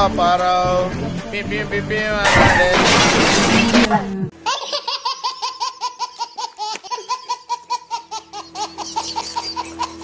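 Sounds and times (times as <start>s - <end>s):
baby laughing: 3.9s - 10.0s.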